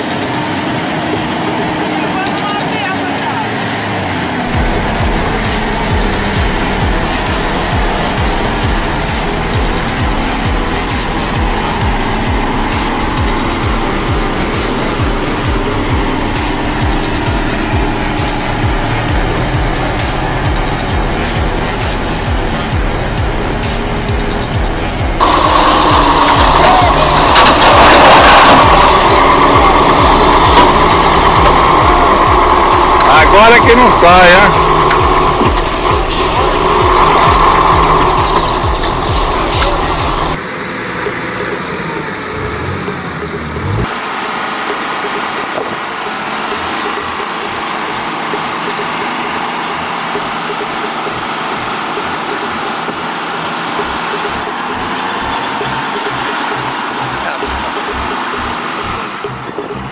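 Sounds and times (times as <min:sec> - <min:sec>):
indistinct voices: 0:00.0 - 0:43.9, 0:46.5 - 0:59.9
vehicle engines running: 0:00.0 - 0:59.9.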